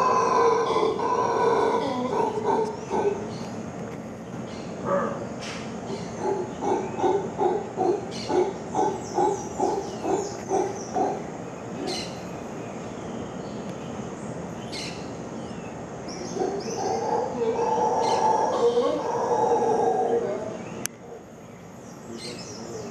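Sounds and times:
howler monkey roar: 0:00.0 - 0:03.4, 0:04.8 - 0:05.3, 0:05.9 - 0:12.0, 0:16.2 - 0:20.6
howler monkeys grunting: 0:00.0 - 0:03.4, 0:04.8 - 0:12.1, 0:16.2 - 0:21.4.

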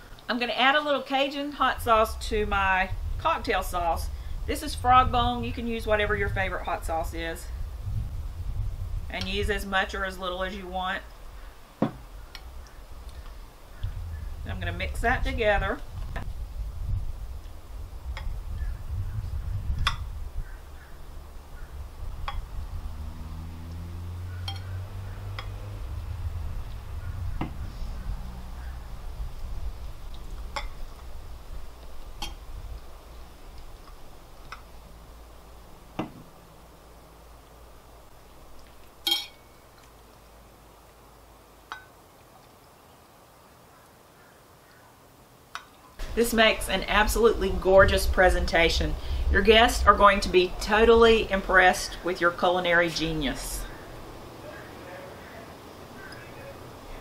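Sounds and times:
steady low rumble: 0:01.6 - 0:39.4, 0:46.0 - 0:57.0
soft knocks: 0:11.8 - 0:12.0
spoon clinking against glass: 0:39.1 - 0:39.5.

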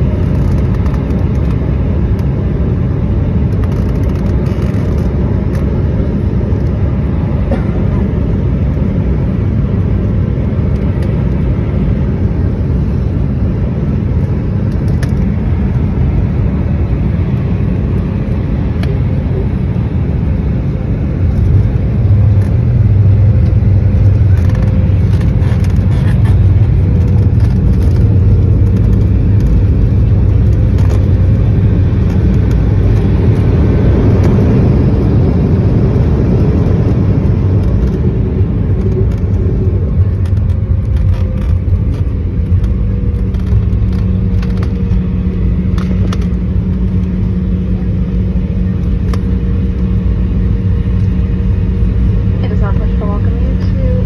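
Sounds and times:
jet engines and wheels rumbling: 0:00.0 - 0:54.0.

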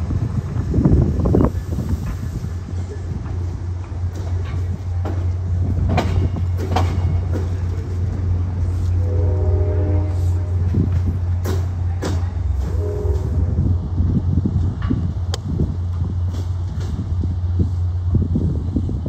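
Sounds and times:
train coaches rumbling past: 0:00.0 - 0:19.0
wheels clicking over rail joints: 0:00.9 - 0:09.0.

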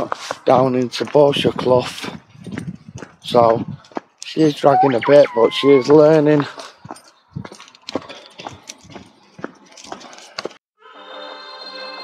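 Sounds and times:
footsteps on gravel path: 0:00.0 - 0:10.6.

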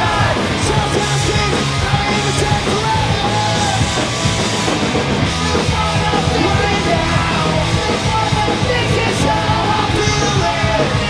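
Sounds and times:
shouted vocals: 0:00.0 - 0:04.6, 0:05.2 - 0:11.0
bass: 0:00.0 - 0:11.0
distorted electric guitars: 0:00.0 - 0:11.0
drum kit: 0:00.0 - 0:11.0.

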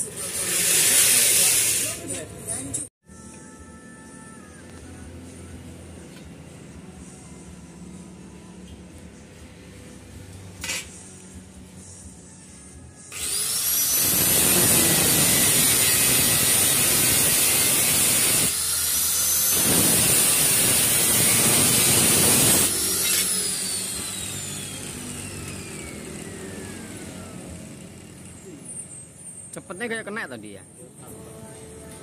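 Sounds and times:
angle grinder cutting steel: 0:00.0 - 0:02.3, 0:13.1 - 0:29.4.

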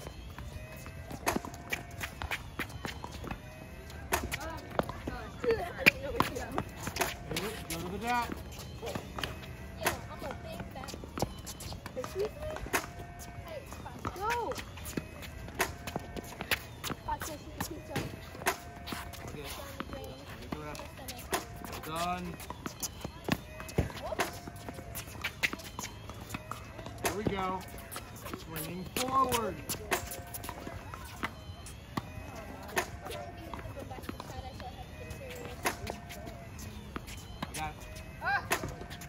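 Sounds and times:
balls bouncing on hard court: 0:00.0 - 0:39.0
running footsteps on court: 0:00.0 - 0:39.0
tennis balls struck by rackets: 0:00.0 - 0:39.0.

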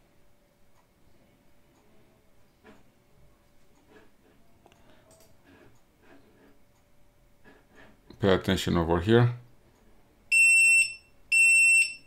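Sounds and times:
high-pitched buzzer beeps: 0:10.3 - 0:12.0.

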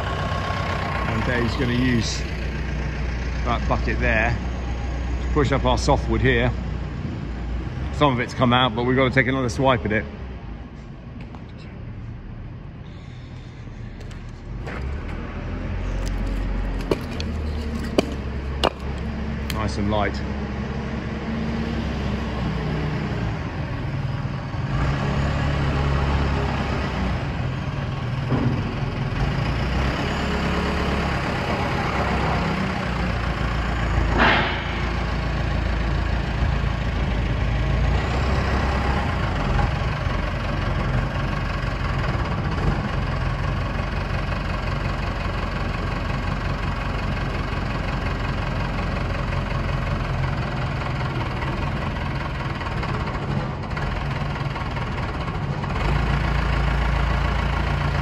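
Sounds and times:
diesel engine running: 0:00.0 - 0:58.0
sharp metal clank: 0:34.0 - 0:36.0.

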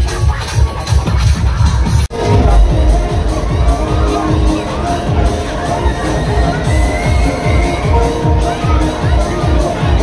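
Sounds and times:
dance music with thudding beat: 0:00.3 - 0:08.8.

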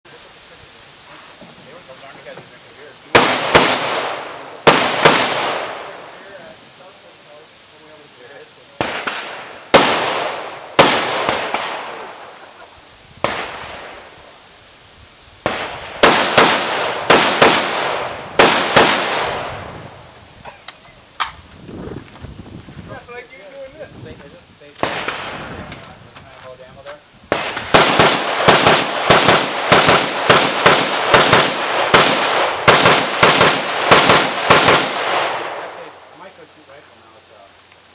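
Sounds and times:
rifle shots echoing: 0:03.1 - 0:06.2, 0:08.8 - 0:12.4, 0:13.2 - 0:14.2, 0:15.4 - 0:19.7, 0:24.8 - 0:25.5, 0:27.3 - 0:36.1.

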